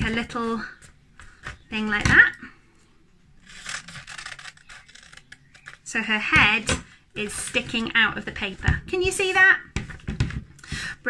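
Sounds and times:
scissors cutting paper: 3.4 - 5.9.

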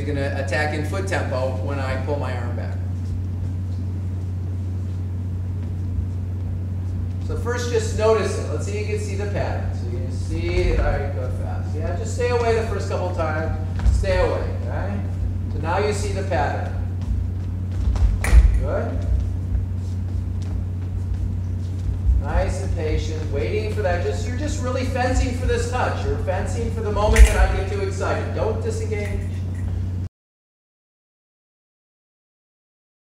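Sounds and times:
low hum: 0.0 - 30.1
steady low rumble: 0.0 - 30.1.

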